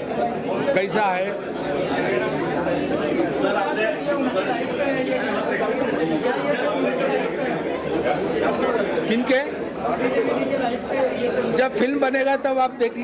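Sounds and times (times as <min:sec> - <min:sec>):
overlapping chatter: 0:00.0 - 0:13.0.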